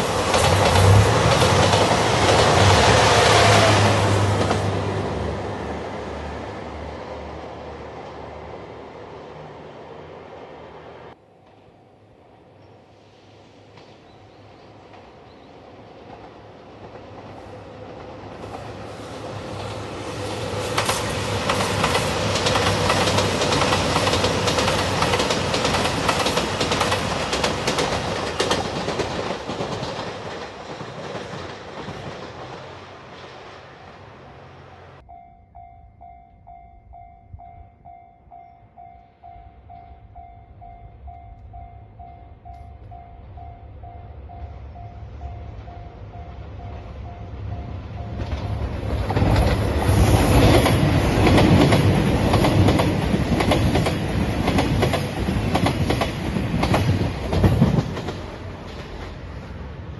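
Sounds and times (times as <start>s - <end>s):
wheels clacking over rail joints: 0.0s - 5.3s, 16.0s - 33.8s, 46.4s - 59.4s
diesel train passing: 0.0s - 59.9s
level crossing warning bell: 35.0s - 48.8s.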